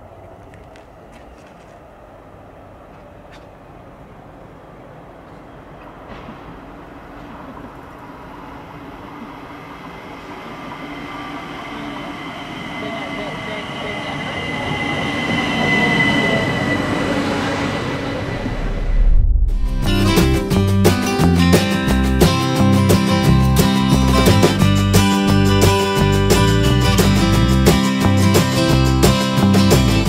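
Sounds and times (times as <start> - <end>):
electric train approaching: 0.0 - 30.0
high-pitched squeal: 10.7 - 21.5.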